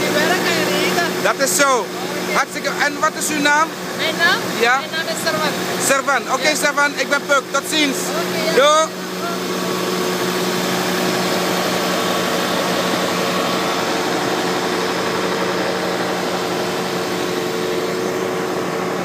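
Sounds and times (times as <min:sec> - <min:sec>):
small engine running: 0:00.0 - 0:19.0.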